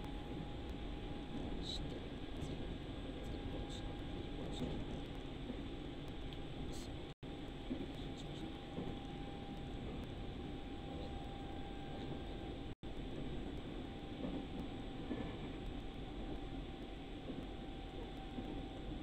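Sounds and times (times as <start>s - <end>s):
train carriage running noise: 0.0s - 19.0s.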